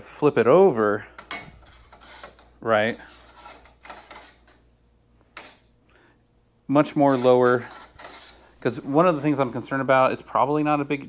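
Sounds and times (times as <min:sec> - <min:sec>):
metal bracket scraping aluminum: 0:01.3 - 0:04.6, 0:05.4 - 0:05.6, 0:06.9 - 0:09.4.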